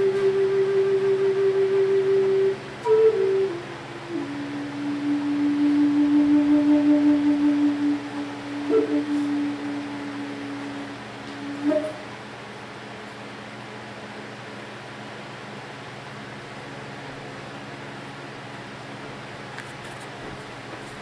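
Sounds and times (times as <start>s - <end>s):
wooden flute melody: 0.0s - 12.2s.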